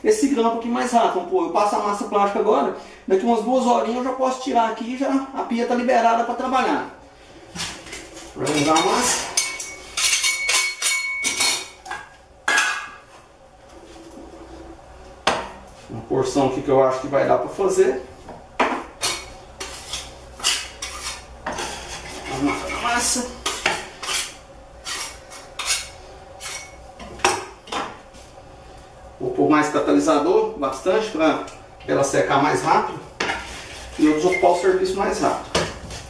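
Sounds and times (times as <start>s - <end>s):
tool scraping a tin: 19.6s - 26.8s.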